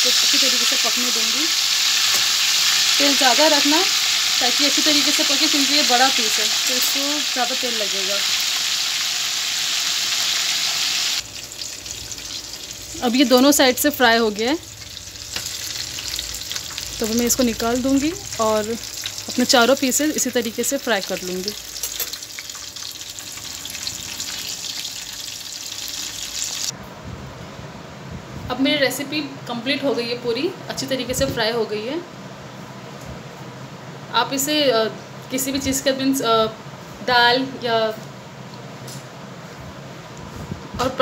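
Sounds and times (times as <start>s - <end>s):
chicken deep-frying in oil: 0.0s - 26.7s
oil crackles: 14.6s - 26.7s.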